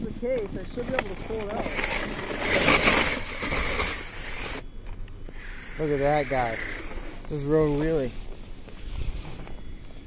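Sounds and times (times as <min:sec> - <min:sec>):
toy truck electric motor whining: 0:01.3 - 0:04.7, 0:05.3 - 0:08.0.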